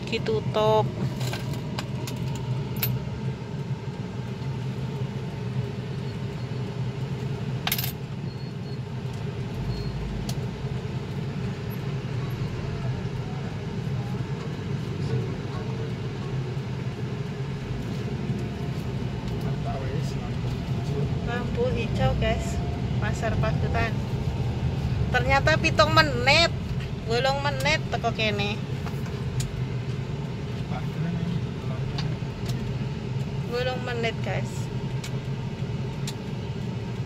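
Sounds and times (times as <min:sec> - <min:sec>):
car engine and road hum: 0:00.0 - 0:37.0.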